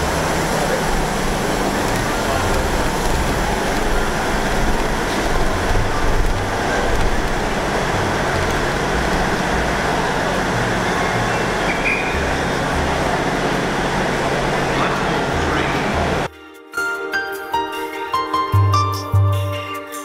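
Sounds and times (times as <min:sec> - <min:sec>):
diesel trains idling: 0:00.0 - 0:16.3.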